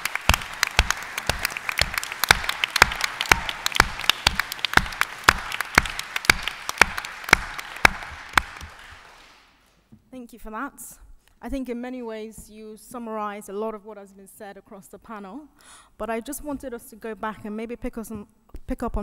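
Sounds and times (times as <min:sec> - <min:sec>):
audience applause: 0:00.0 - 0:09.5
loud close claps: 0:00.0 - 0:09.6.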